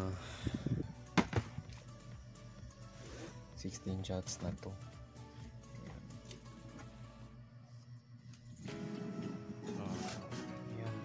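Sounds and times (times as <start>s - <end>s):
plastic containers knocking: 1.2s - 1.6s.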